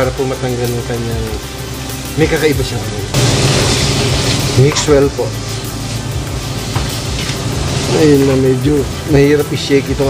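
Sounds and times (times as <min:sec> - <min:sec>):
background music: 0:00.0 - 0:10.0
food sizzling in frying pan: 0:03.2 - 0:09.3.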